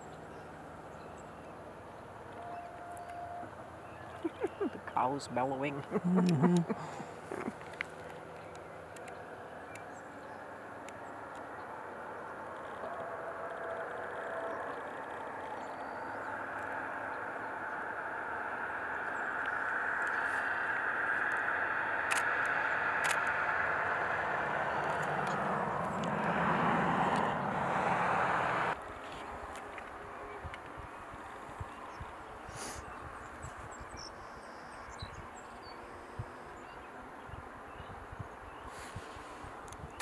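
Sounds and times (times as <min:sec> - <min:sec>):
distant engine drone: 0:00.0 - 0:33.5.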